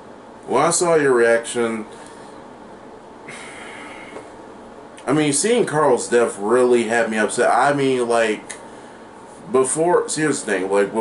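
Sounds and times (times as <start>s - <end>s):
room hiss: 0.0s - 11.0s
man breathing out through nose: 3.3s - 4.3s.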